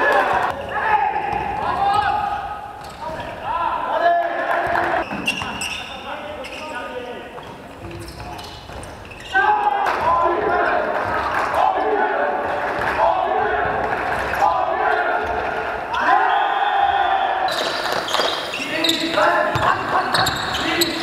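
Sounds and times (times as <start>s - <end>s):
players' voices: 0.0s - 21.0s
sneaker squeaks: 2.8s - 3.2s, 4.8s - 9.7s, 17.5s - 21.0s.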